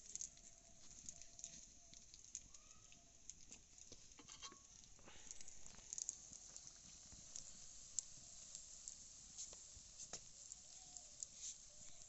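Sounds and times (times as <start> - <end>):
food frying in hot oil: 0.0 - 12.0.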